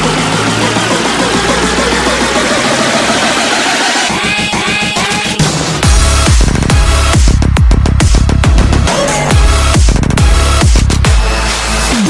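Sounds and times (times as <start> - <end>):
rising synth sweep: 0.0 - 4.3
bass: 0.0 - 12.0
pulsing dance beat: 0.0 - 12.0.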